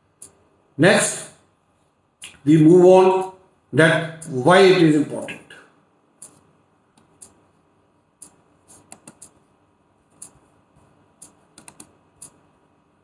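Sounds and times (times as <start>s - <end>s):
computer keyboard taps: 8.2s - 9.4s, 11.2s - 12.4s.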